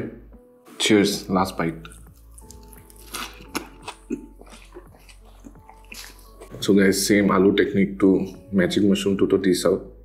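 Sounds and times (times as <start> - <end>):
close-up chewing: 1.8 - 6.7.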